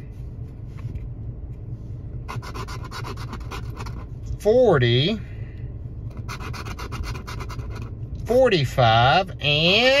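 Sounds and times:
coin scratching a ticket: 2.3s - 4.1s, 6.1s - 7.9s.

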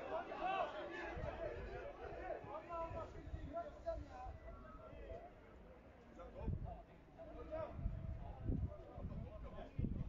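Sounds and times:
distant people shouting and talking: 0.0s - 5.1s.

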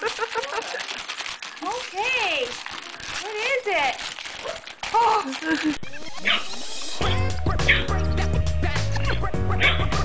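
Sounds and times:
wrapping paper crinkling and tearing: 0.0s - 7.0s
high-pitched vocal sounds: 6.3s - 10.0s.

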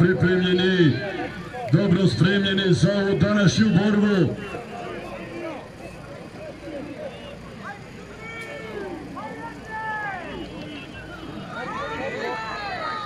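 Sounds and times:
distant crowd talking and calling: 0.0s - 13.0s.

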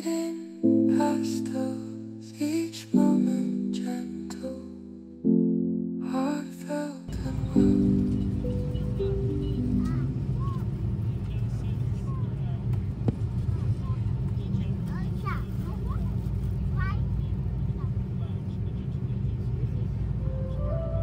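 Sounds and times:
faint voices: 7.1s - 20.8s
airliner rolling low rumble: 7.1s - 21.0s.

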